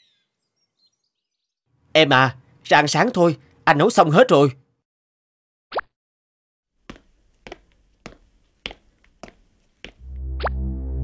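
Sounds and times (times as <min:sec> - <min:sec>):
faint bird chirps: 0:00.0 - 0:01.6.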